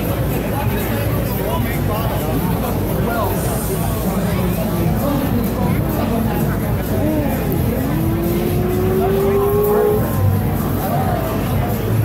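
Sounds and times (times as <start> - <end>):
hubbub of a crowded hall: 0.0 - 12.0
person holding a long rising note: 7.1 - 10.2.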